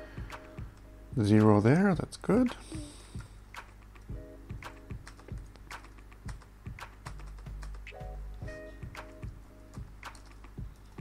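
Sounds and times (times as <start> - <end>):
computer keyboard typing: 3.6 - 8.0, 9.7 - 11.0.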